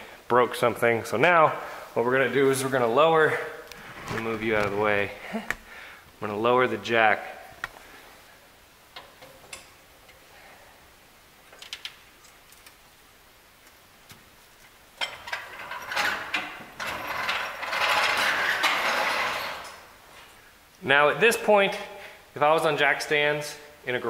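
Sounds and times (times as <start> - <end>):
scraping clattering mechanical noise: 15.0 - 19.9.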